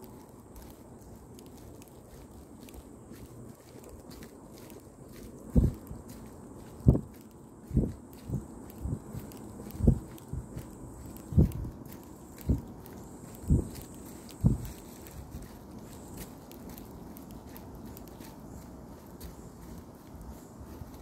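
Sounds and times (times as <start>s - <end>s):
dull low thuds: 5.5s - 6.0s, 6.8s - 7.1s, 7.7s - 11.8s, 13.4s - 13.8s, 14.4s - 14.8s.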